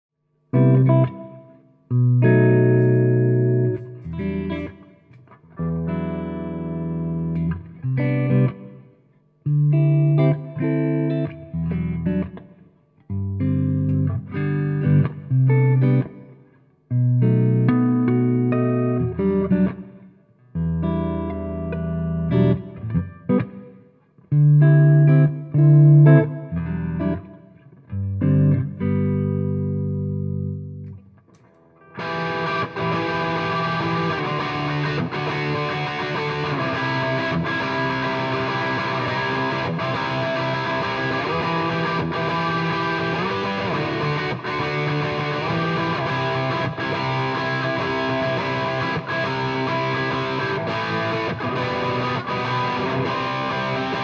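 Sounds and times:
electric guitar riffs through amp: 0:31.9 - 0:54.0.

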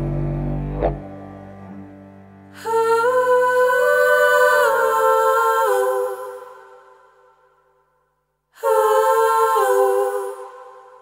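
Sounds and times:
hummed held chord: 0:00.0 - 0:03.7.

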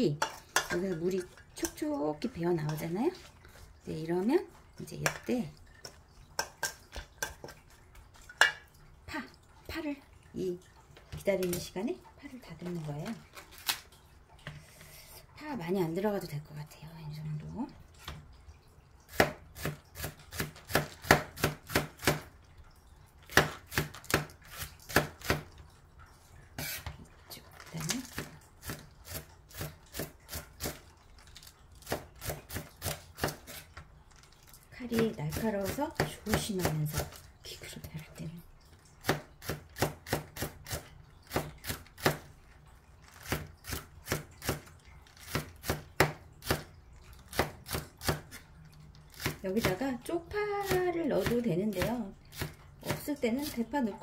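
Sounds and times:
wooden spoon stirring in steel bowl: 0:00.0 - 0:08.7.

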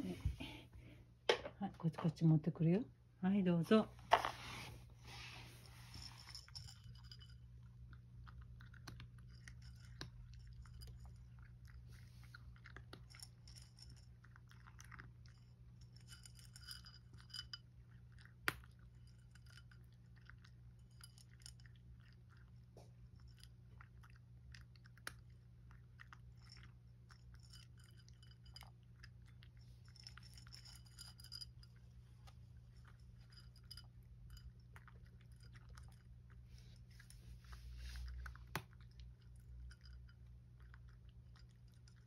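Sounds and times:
cat crunching dry kibble: 0:05.6 - 0:42.0.

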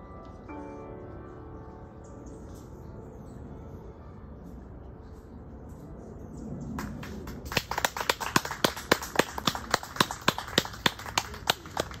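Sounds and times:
people clapping: 0:06.8 - 0:12.0.

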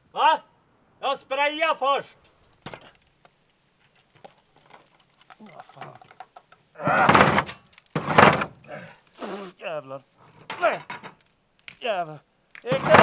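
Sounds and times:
scraper scraping wooden wall: 0:06.8 - 0:08.6, 0:12.7 - 0:13.0.

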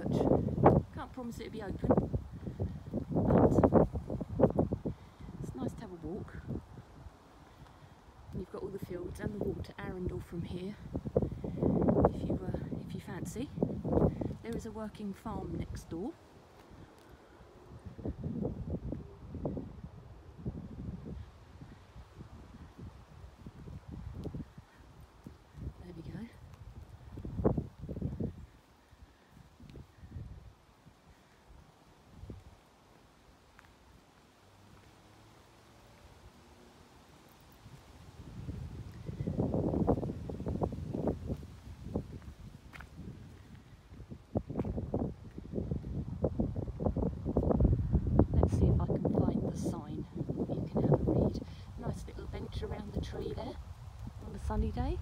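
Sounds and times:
wind buffeting microphone: 0:00.0 - 0:33.0, 0:37.4 - 0:55.0.

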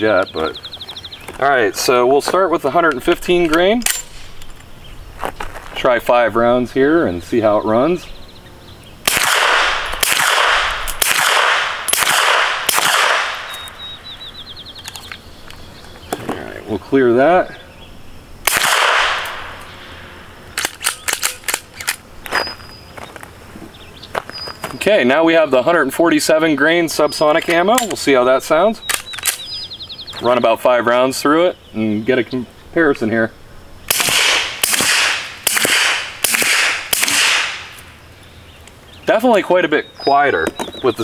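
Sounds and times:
pistol metallic clicks: 0:03.4 - 0:04.6, 0:09.1 - 0:13.8, 0:20.6 - 0:22.0, 0:28.8 - 0:29.6
suppressed pistol shot: 0:09.0 - 0:13.8, 0:18.4 - 0:19.6, 0:33.9 - 0:37.8
gunshot echo: 0:09.1 - 0:13.5, 0:18.4 - 0:19.6, 0:33.9 - 0:37.8.

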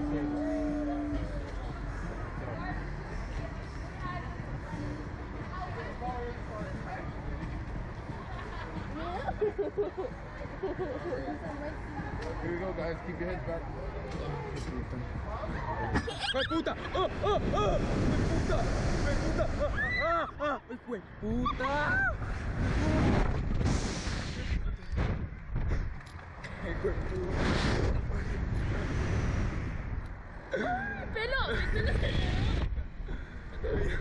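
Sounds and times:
people laughing: 0:08.1 - 0:11.7, 0:15.8 - 0:20.6, 0:30.5 - 0:34.0
people screaming: 0:19.6 - 0:20.4
wind buffeting microphone: 0:31.0 - 0:34.0.

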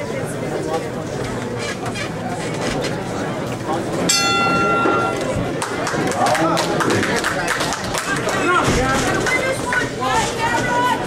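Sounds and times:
crowd chatter: 0:00.0 - 0:11.0
boxing ring bell: 0:04.1 - 0:05.4.

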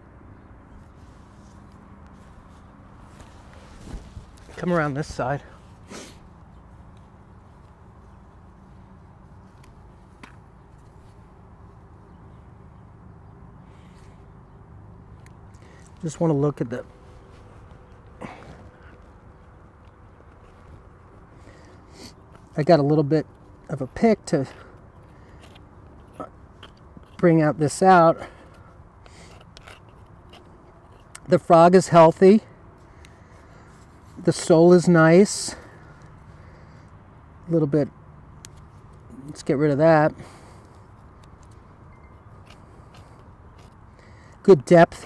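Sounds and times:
hoof pick scraping: 0:13.7 - 0:32.2, 0:38.4 - 0:45.0.

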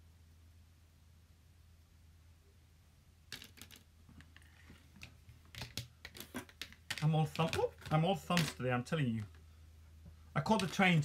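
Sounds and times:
makeup items clicking and tapping: 0:03.3 - 0:08.6, 0:10.5 - 0:11.0.

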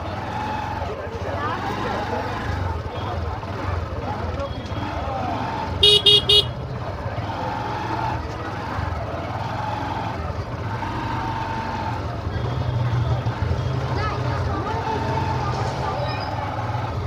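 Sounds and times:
market crowd chatter: 0:00.0 - 0:17.0
vehicle horn toots: 0:05.8 - 0:06.6.

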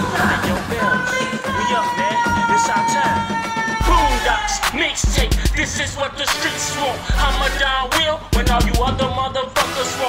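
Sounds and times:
hip-hop beat: 0:00.0 - 0:10.0.

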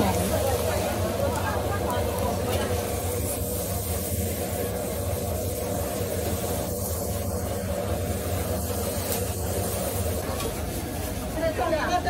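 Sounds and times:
rice crust sizzling in oil: 0:00.0 - 0:12.0.

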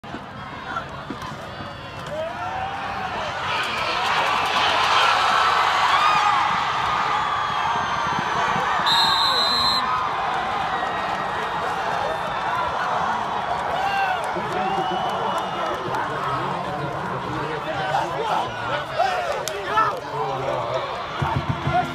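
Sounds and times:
stadium crowd shouting and cheering: 0:00.0 - 0:21.9.

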